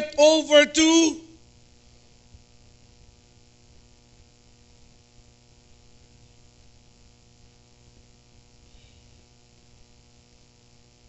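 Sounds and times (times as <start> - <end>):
electrical mains hum with hiss: 0.0 - 11.0.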